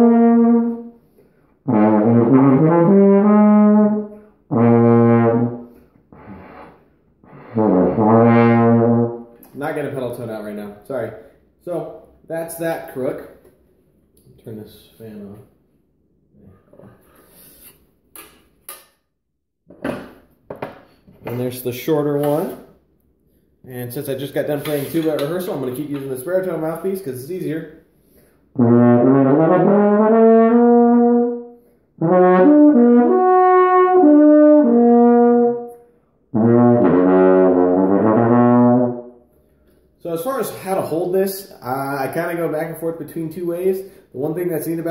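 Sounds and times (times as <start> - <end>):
brass horn playing held notes: 0.0 - 1.0, 1.6 - 9.3, 28.6 - 35.7, 36.3 - 39.1.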